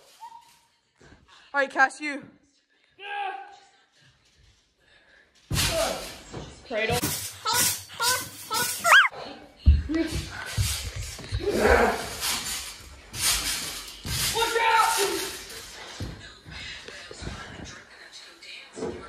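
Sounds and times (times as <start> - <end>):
bodies bouncing on trampoline: 5.5 - 17.8
children shouting and laughing: 8.5 - 9.2.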